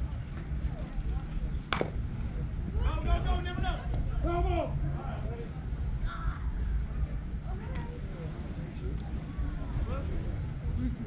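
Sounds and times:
bat hitting baseball: 0:01.7 - 0:02.0.

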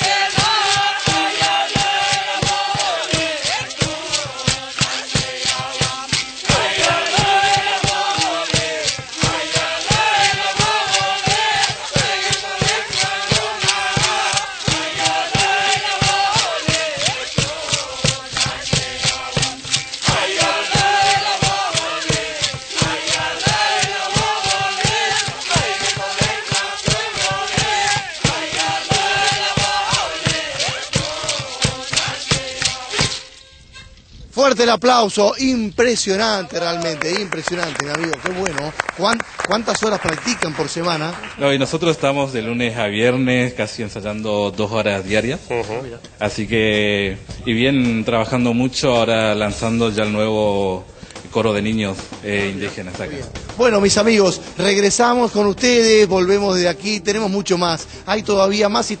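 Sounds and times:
choir singing a chant-like song: 0:00.0 - 0:33.2
hand drum beating: 0:00.0 - 0:33.3
gourd rattles: 0:00.0 - 0:33.4.

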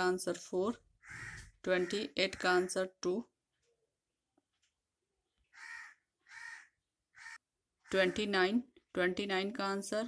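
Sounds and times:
crow cawing: 0:01.0 - 0:02.5, 0:05.5 - 0:08.2.

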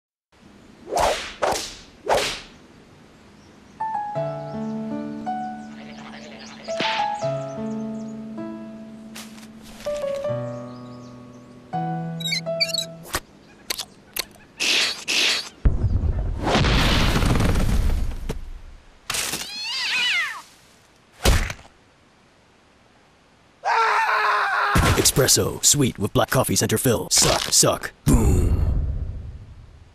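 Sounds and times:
quick whooshes: 0:00.9 - 0:02.6.

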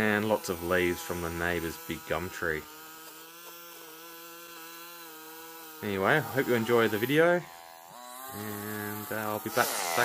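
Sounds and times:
string trimmer running: 0:00.0 - 0:10.0.

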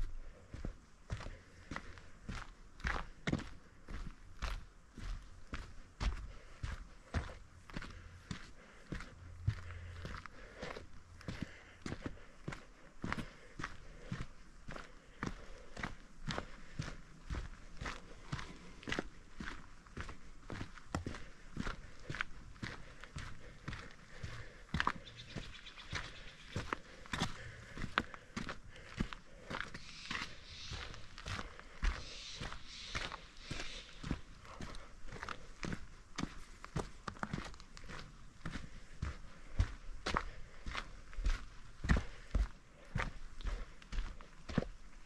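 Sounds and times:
footsteps on dirt trail: 0:00.0 - 0:45.0.

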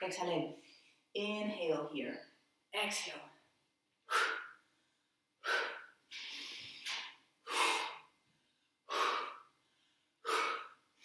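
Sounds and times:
soft inhale: 0:04.1 - 0:10.9.

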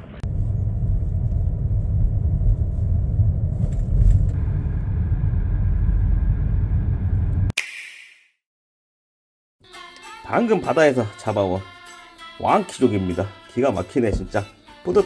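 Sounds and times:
car engine and road rumble: 0:00.0 - 0:07.5
sharp click: 0:07.6 - 0:08.3.

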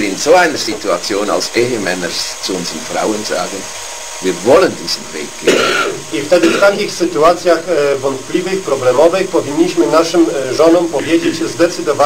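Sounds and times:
man talking: 0:00.0 - 0:12.0.

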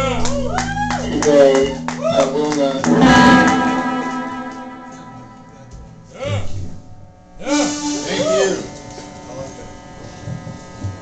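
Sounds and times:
synthesizer drone: 0:02.8 - 0:06.2
warbling synthesizer tones: 0:02.9 - 0:05.7.

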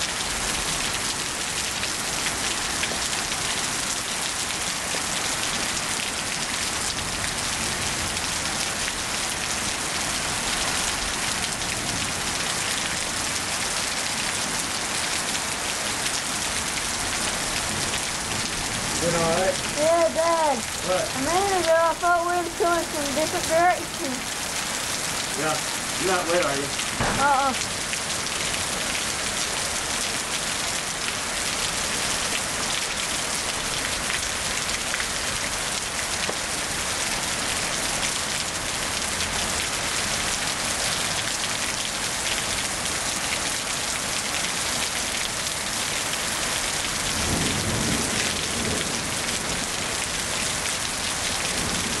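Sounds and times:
steady rain falling: 0:00.0 - 0:52.0.

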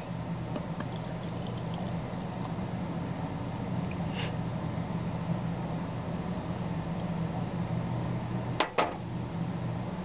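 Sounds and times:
low background hum: 0:00.0 - 0:10.0
beer pouring into a mug: 0:00.6 - 0:02.6.

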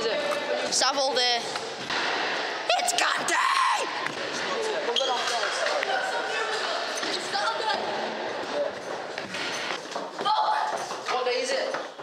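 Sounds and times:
knocks echoing in a hall: 0:01.2 - 0:12.0.

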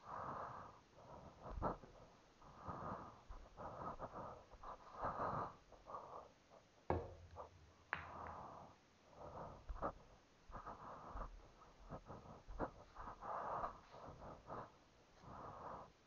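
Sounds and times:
soft close breathing: 0:00.0 - 0:16.0.

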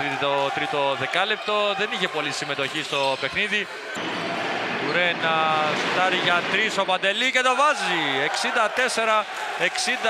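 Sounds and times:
man commentating: 0:05.0 - 0:10.0.

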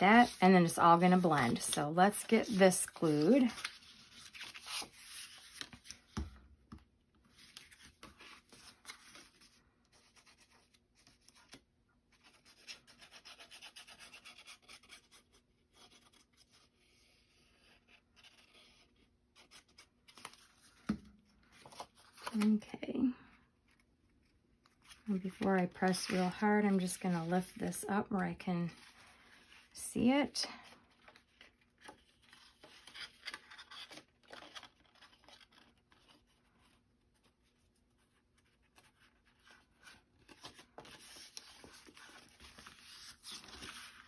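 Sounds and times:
cardstock rustling and rubbing: 0:00.0 - 0:06.2, 0:24.7 - 0:29.8, 0:38.6 - 0:44.0.

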